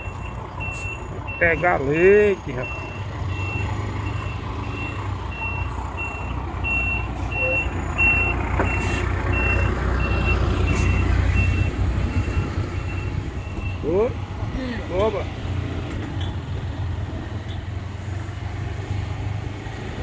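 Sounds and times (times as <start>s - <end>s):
truck reversing alarm beeping: 0.0s - 14.4s
low engine rumble: 0.0s - 20.0s.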